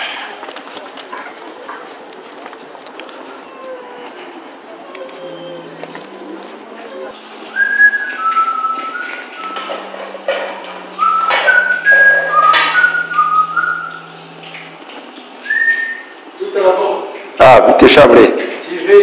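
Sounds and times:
man whistling a tune: 7.5s - 9.9s, 11.0s - 14.0s, 15.4s - 16.1s.

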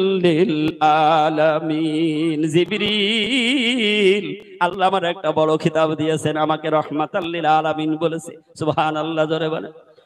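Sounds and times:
man chanting through microphone: 0.0s - 10.0s.

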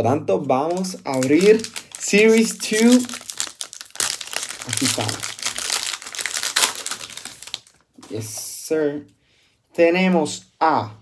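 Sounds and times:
foil wrapper crinkling: 0.5s - 8.0s.

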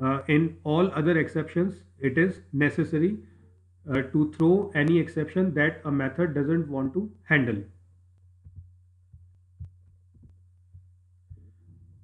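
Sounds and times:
faint low electrical hum: 0.0s - 12.0s.

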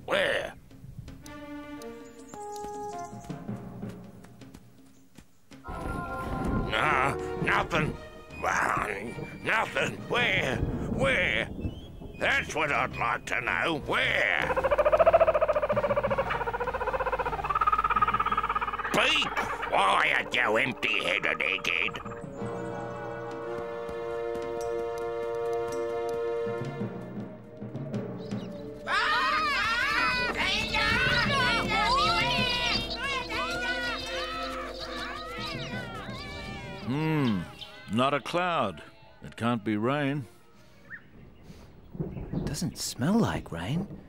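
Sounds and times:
music: 0.0s - 42.4s
cockatoos squawking: 13.6s - 23.0s, 28.3s - 39.2s
cartoon bird cackling laugh: 14.4s - 20.2s, 21.0s - 22.2s.

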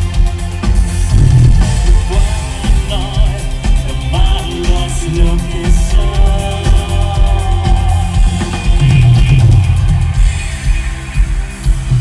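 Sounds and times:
live synth-pop music: 0.0s - 12.0s.

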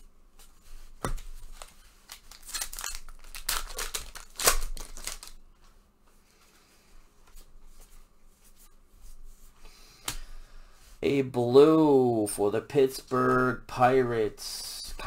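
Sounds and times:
faint handling of cards: 0.3s - 11.0s
wrapper tearing and crinkling: 1.4s - 5.4s.

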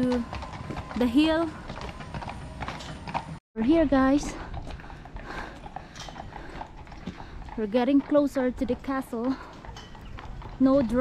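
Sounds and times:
horse hooves on paved road: 0.0s - 11.0s.

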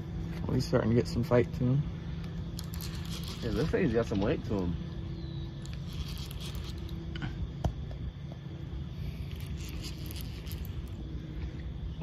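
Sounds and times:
fishing reel cranking: 2.6s - 4.1s, 5.6s - 6.9s, 9.2s - 10.9s.

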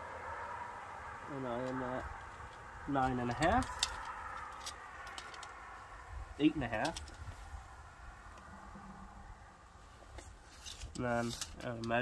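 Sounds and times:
low rumble: 7.3s - 9.9s.

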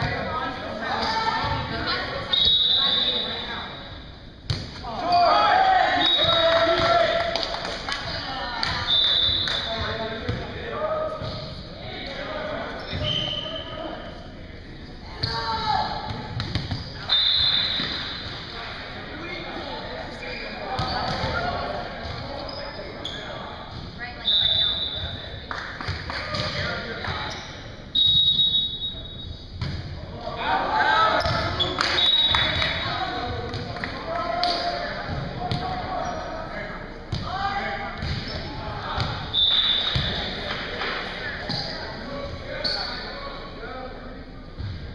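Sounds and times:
players' voices: 0.0s - 44.9s
sneakers squeaking on court: 12.8s - 13.6s, 16.4s - 18.3s, 20.2s - 23.8s, 27.2s - 27.7s.

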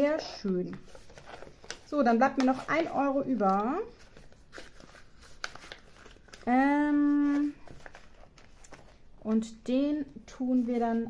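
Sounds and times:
soft handling rustles: 0.2s - 11.0s.

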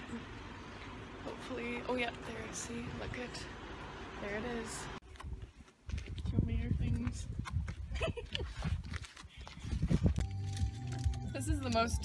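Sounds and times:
footsteps on asphalt: 5.0s - 11.9s
wind rumble on microphone: 5.1s - 10.3s.

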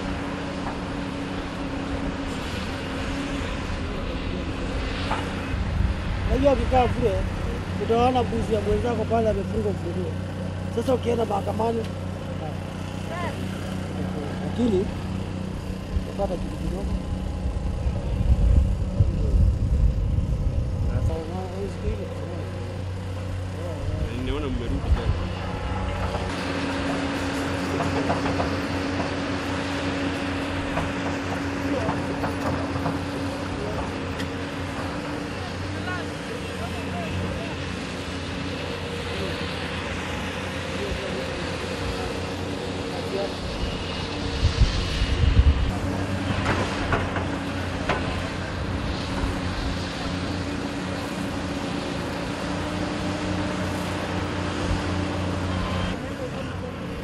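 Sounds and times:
excavator diesel engine running: 0.0s - 57.0s
low rumbles: 14.7s - 26.4s.

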